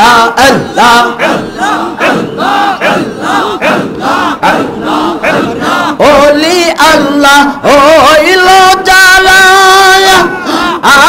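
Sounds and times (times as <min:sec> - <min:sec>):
crowd of men chanting: 0:00.0 - 0:11.0.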